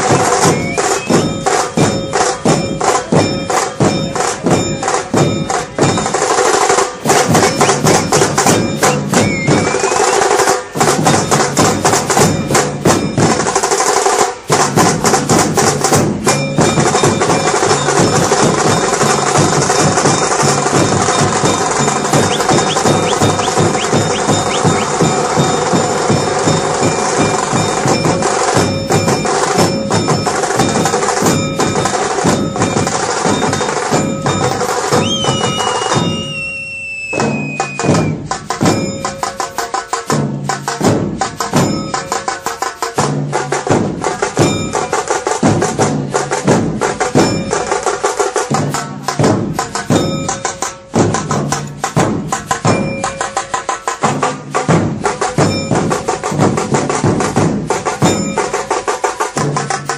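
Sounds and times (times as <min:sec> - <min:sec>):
drum band playing fast: 0:00.0 - 0:59.9
held tones: 0:21.1 - 0:27.2.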